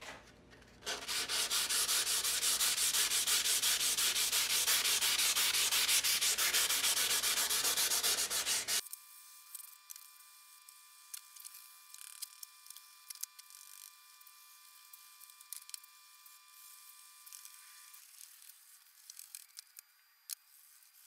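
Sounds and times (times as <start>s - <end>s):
sandpaper scrubbing steel blade: 0.8s - 8.8s.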